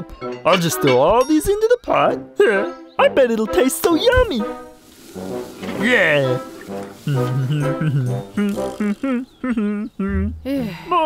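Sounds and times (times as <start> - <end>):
cartoon music phrase: 0.0 - 2.8.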